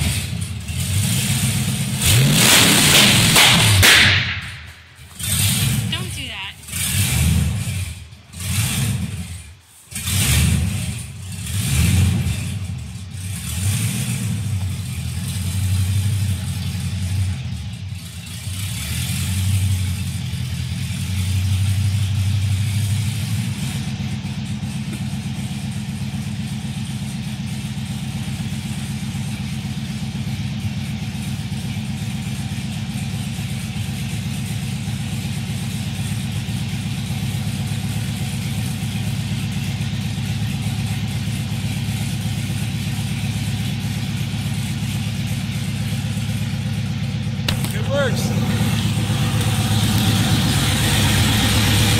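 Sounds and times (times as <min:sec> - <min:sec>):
car engine idling unevenly: 0:03.2 - 0:51.9.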